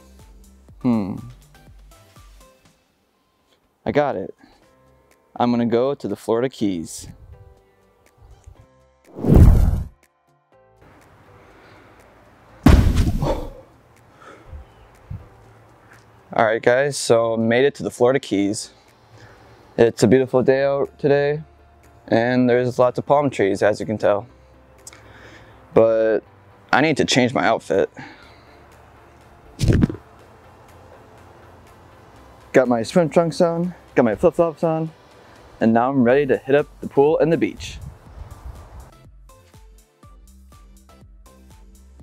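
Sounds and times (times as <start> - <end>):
whoosh sound effect: 9.1 - 9.9
loud sudden thud: 9.2 - 10.0, 12.7 - 13.6
faint outdoor hiss: 10.8 - 38.9.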